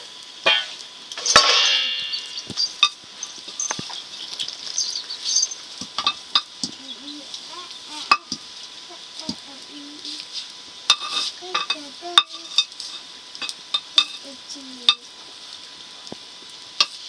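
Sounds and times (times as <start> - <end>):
simmering pot and fire hiss: 0.0 - 17.0.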